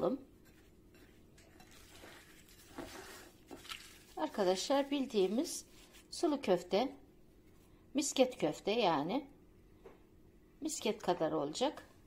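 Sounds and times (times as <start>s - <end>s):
meat mixture kneaded by hand: 0.0s - 6.7s.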